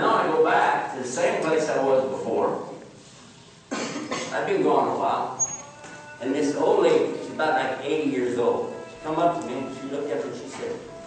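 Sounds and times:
person coughing: 3.7s - 4.4s
person speaking: 4.3s - 11.0s.

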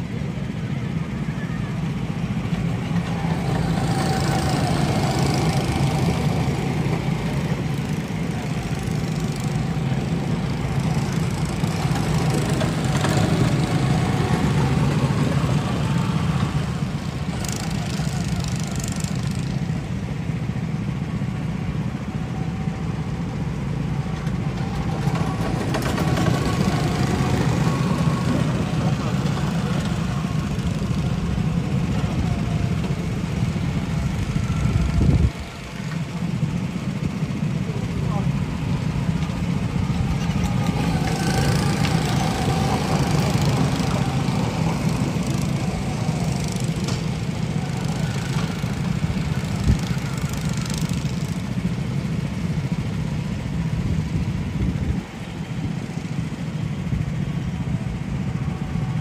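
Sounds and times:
go-kart engine running: 0.0s - 59.0s.

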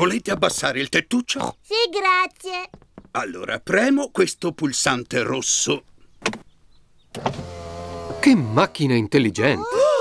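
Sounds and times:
electric motor whirring: 7.2s - 8.9s.

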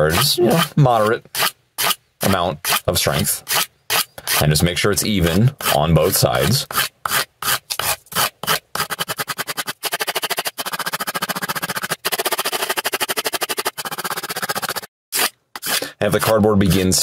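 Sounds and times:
knife scraping on cardboard: 5.2s - 17.0s.

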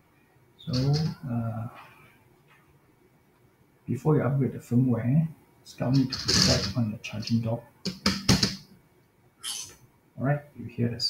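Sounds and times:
brief high robot tone: 9.4s - 9.7s.

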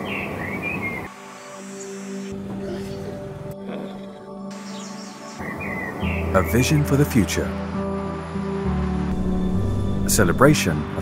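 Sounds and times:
birds chirping: 0.0s - 3.1s, 3.8s - 7.6s
soft sustained music: 0.0s - 11.0s.

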